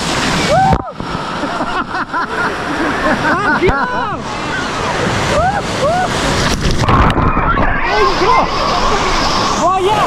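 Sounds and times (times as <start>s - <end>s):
waves breaking on beach: 0.0s - 10.0s.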